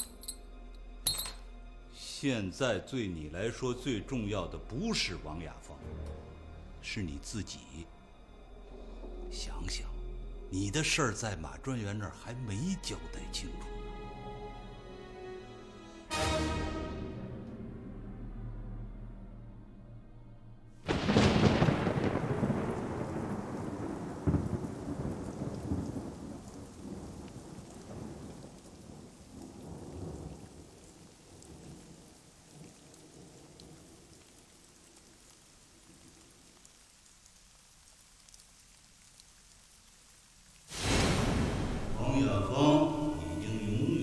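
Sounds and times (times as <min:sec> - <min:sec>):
rain falling: 0:00.0 - 0:15.4, 0:20.8 - 0:44.0
thunder rumbling: 0:20.8 - 0:34.1, 0:40.7 - 0:43.9.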